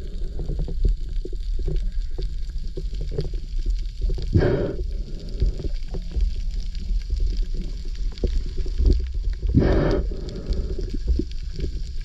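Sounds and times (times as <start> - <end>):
gurgling exhaled bubbles: 0.0 - 12.0
underwater low rumble: 0.0 - 12.0.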